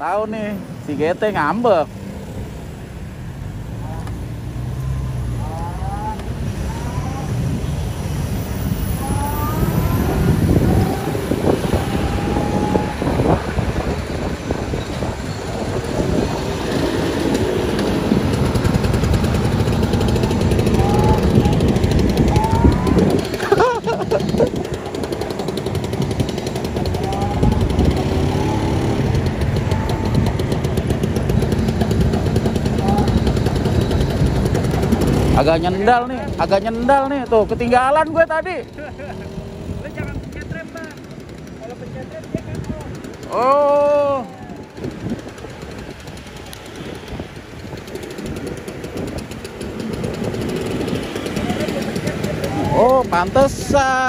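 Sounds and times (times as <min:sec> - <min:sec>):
road and traffic noise: 0:00.0 - 0:54.0
wind buffeting microphone: 0:05.2 - 0:54.0.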